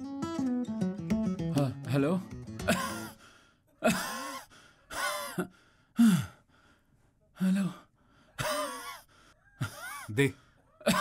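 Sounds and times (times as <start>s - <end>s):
man panting and gasping: 2.7s - 11.0s.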